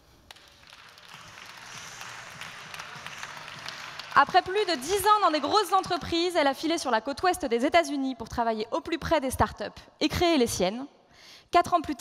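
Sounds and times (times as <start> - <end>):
audience applauding: 0.3 - 6.3.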